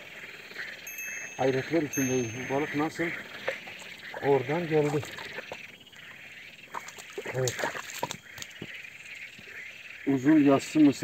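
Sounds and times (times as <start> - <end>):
frogs calling: 0.0 - 11.0
insects calling: 0.0 - 11.0.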